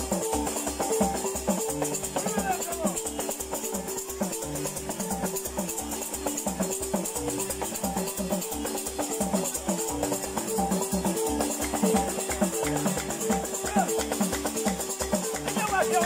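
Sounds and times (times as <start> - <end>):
shaker rattling: 0.0 - 16.0
wooden xylophones playing melody: 0.0 - 16.0.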